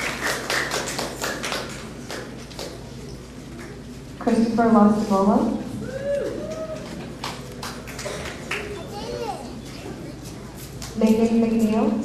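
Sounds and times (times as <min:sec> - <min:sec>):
audience clapping: 0:00.0 - 0:02.9, 0:06.6 - 0:09.4.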